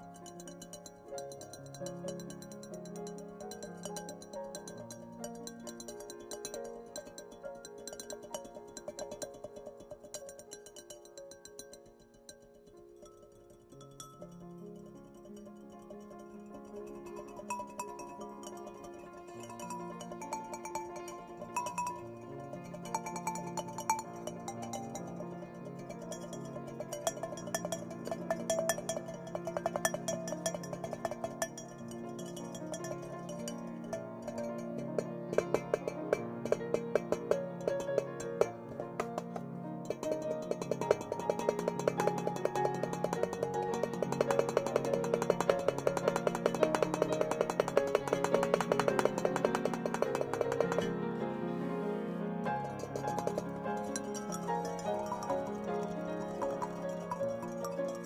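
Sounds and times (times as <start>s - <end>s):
piano and glockenspiel music: 0.0s - 58.0s.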